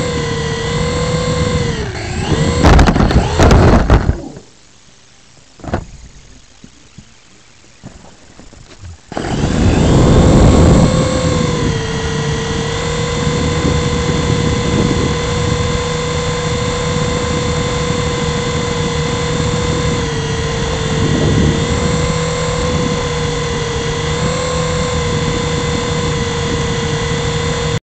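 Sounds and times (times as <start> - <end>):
toy helicopter rotors whining: 0.0 - 4.4, 9.1 - 27.8.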